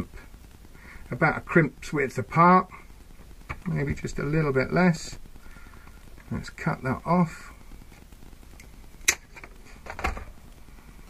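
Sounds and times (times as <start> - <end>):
wire cutters snapping wire: 9.0 - 9.2.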